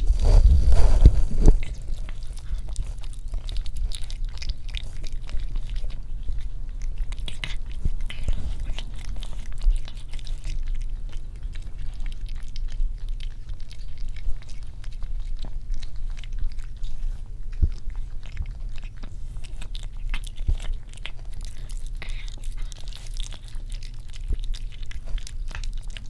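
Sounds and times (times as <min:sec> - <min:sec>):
cat chewing and lapping: 0:00.0 - 0:26.0
steady low hum: 0:00.0 - 0:26.0.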